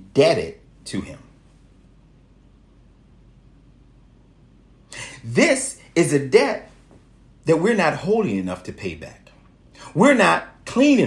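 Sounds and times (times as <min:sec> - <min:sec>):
man speaking: 0:00.0 - 0:01.4, 0:05.0 - 0:06.8, 0:07.4 - 0:11.0
faint low hum: 0:00.0 - 0:11.0.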